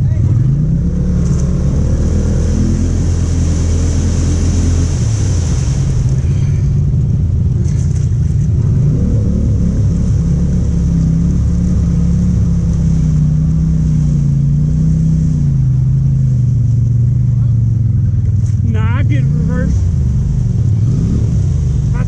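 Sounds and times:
atv engine running: 0.0 - 22.0.

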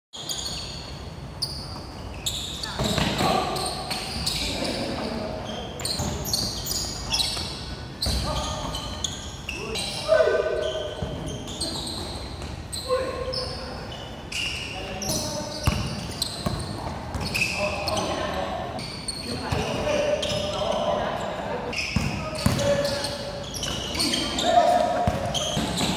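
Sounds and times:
basketball bouncing on court floor: 15.6 - 17.4, 22.0 - 22.9, 24.9 - 25.9.

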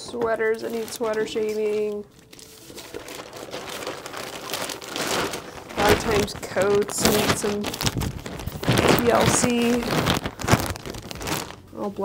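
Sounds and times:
plastic bag crinkling: 0.5 - 12.0.

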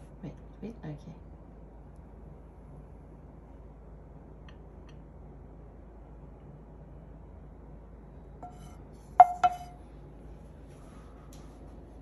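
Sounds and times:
dishes clinking: 8.4 - 9.8.

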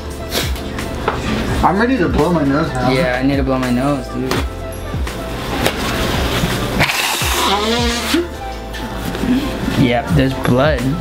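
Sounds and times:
nose blowing: 0.0 - 0.7, 6.5 - 8.4
background music: 0.0 - 11.0.

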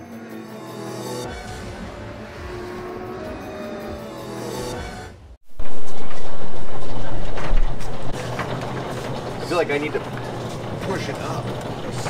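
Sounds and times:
roll-up shutter door rattling: 5.6 - 12.0.

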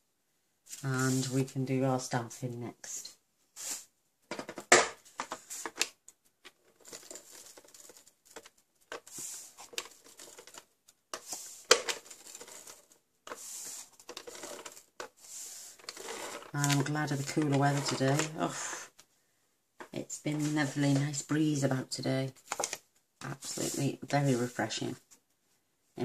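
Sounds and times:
cardstock rustling and scraping: 3.6 - 18.9, 19.8 - 25.2.

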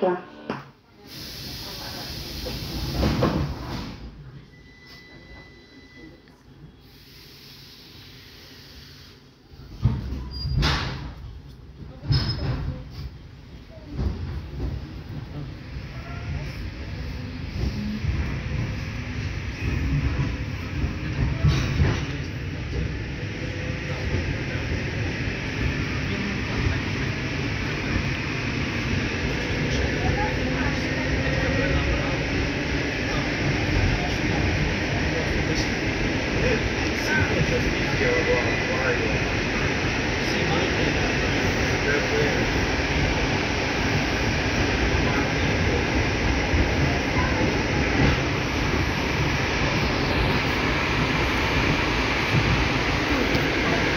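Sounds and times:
train running gear rumble: 9.8 - 53.9.

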